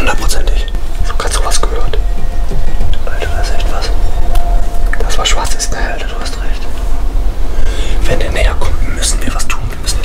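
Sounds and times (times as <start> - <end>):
steady low rumble: 0.0 - 10.0
person whispering: 3.0 - 4.0.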